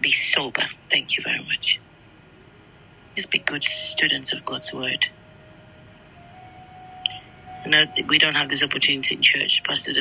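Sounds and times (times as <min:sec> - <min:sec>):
faint steady hiss: 0:00.0 - 0:10.0
faint held tone: 0:02.5 - 0:09.8.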